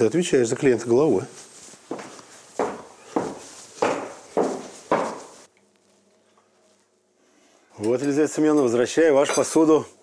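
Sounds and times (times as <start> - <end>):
footsteps on wooden floor: 1.4 - 5.5.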